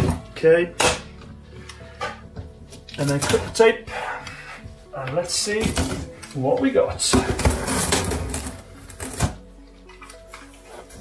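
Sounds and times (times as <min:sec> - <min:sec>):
faint background music: 0:00.0 - 0:11.0.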